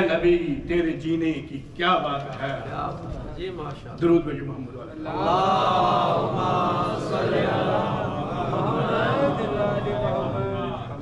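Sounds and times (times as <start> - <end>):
many voices chanting in unison: 5.0 - 11.0.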